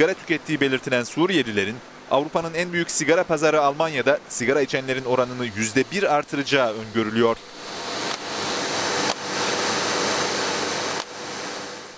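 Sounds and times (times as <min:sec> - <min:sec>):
faint hum: 0:00.0 - 0:11.9
machine whirring and hissing: 0:00.0 - 0:11.9.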